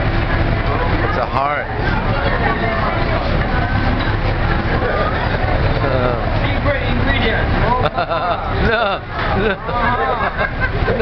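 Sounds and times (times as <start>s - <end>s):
overlapping voices talking: 0.0s - 11.0s.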